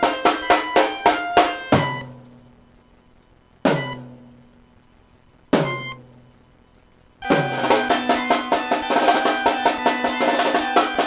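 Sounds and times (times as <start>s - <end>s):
drum hits with descending tone: 7.2s - 11.0s.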